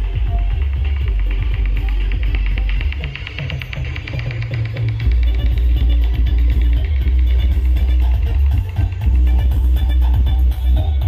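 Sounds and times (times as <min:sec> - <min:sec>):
deep sub-bass: 0:00.0 - 0:11.0
loud dance music: 0:00.0 - 0:11.0.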